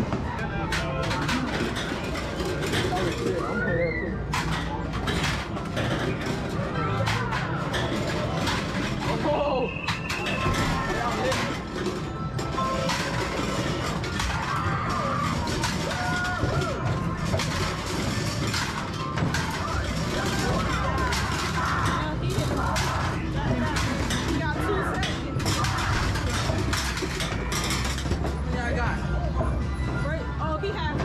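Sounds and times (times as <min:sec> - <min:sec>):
crowd chatter: 0:00.0 - 0:31.0
game machine music and beeps: 0:00.4 - 0:31.0.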